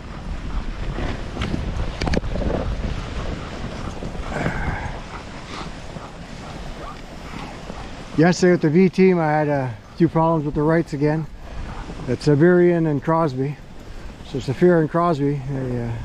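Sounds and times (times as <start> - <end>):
sled rushing on snow: 0.0 - 16.0
wind buffeting microphone: 0.0 - 16.0.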